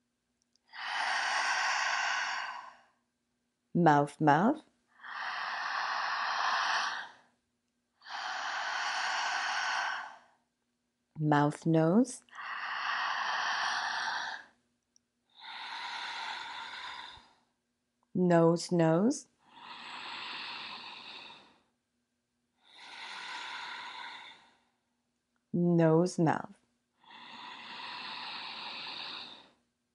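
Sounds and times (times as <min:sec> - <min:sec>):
woman breathing through mouth: 0:00.7 - 0:03.0, 0:08.0 - 0:10.4, 0:12.3 - 0:14.6, 0:15.3 - 0:17.5, 0:19.4 - 0:21.7, 0:22.6 - 0:24.8, 0:27.0 - 0:29.6.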